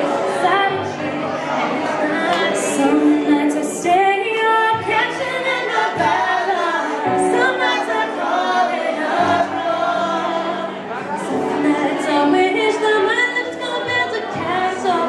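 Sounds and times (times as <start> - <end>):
woman singing pop songs: 0.0 - 1.1, 1.7 - 10.0, 11.2 - 15.0.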